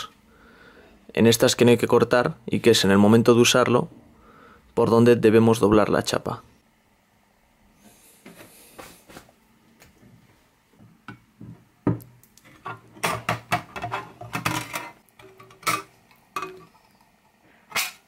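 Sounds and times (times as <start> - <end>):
tin snips cutting sheet metal: 17.7 - 18.0.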